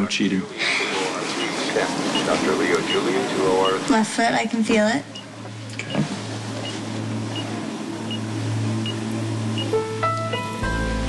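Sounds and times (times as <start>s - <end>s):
soft underscore music drone: 0.5s - 11.0s
patient monitor beeping: 0.9s - 4.0s, 5.0s - 10.5s.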